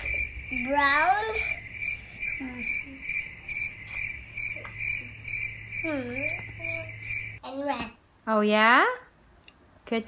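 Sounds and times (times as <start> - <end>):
high repeated chirps: 0.0 - 7.4.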